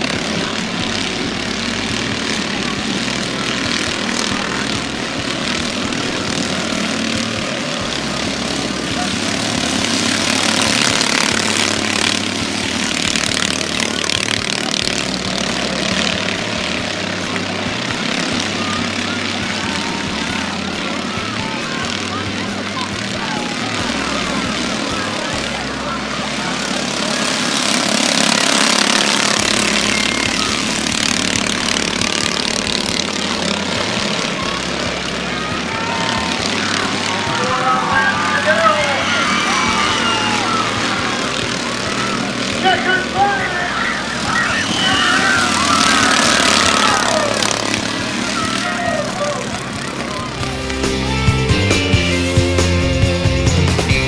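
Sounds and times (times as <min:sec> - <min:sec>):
children chattering: 0:00.0 - 0:52.9
stock car engines racing: 0:00.0 - 0:54.0.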